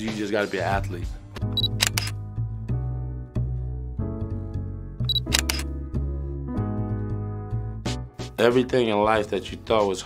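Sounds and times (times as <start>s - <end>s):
background music with bass: 0.0s - 10.0s
camera shutter clicks: 1.6s - 2.2s, 5.1s - 5.7s.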